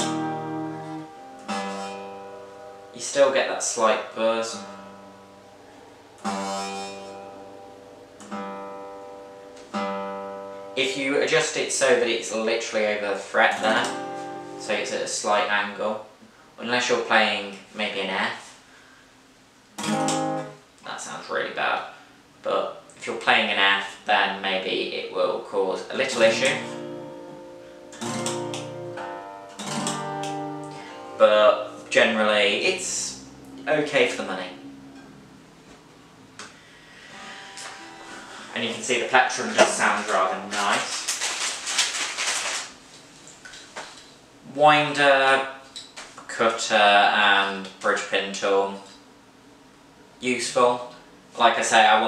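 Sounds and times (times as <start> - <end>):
guitar string buzz: 0.0 - 3.2, 4.4 - 10.8, 13.4 - 15.0, 19.8 - 20.6, 26.0 - 40.4
acoustic guitar chord strummed: 0.0 - 3.3, 4.4 - 10.8, 13.4 - 15.0, 19.8 - 20.6, 26.0 - 40.7.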